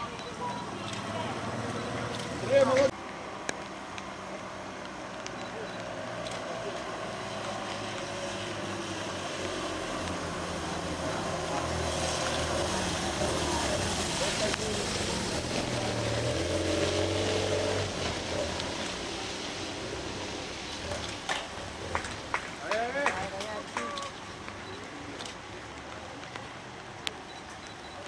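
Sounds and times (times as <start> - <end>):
motorcycle engines humming: 0.0 - 28.0
tyres hissing on wet road: 0.0 - 28.0.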